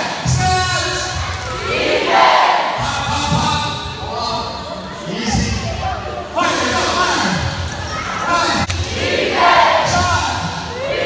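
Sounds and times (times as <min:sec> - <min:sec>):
voices and shouts in gym: 0:00.0 - 0:11.0.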